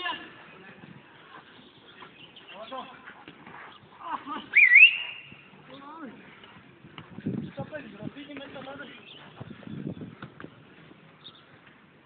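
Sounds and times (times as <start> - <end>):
swooping whistle: 4.5 - 5.4.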